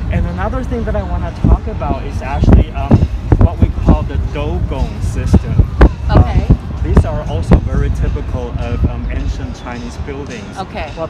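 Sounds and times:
wind rumble on microphone: 0.0s - 10.0s
man talking: 0.0s - 11.0s.

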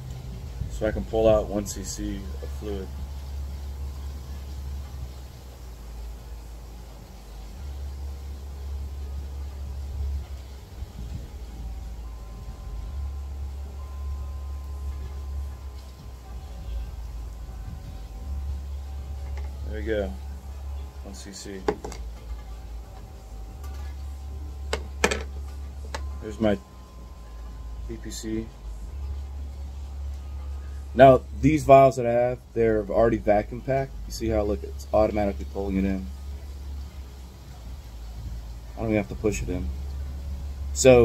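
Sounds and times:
faint hiss: 0.0s - 41.0s
low steady rumble: 0.0s - 41.0s.

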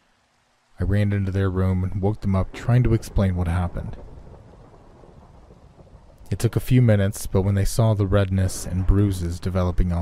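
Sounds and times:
faint steady rain: 0.0s - 10.0s
low rumble: 1.8s - 10.0s.

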